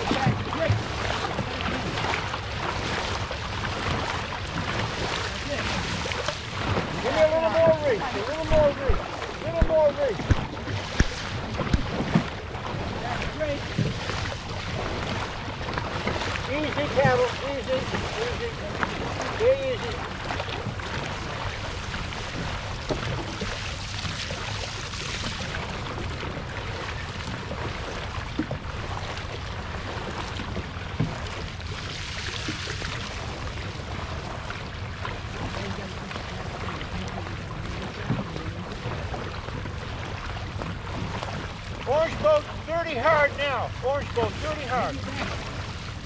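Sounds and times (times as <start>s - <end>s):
water rushing: 0.0s - 46.0s.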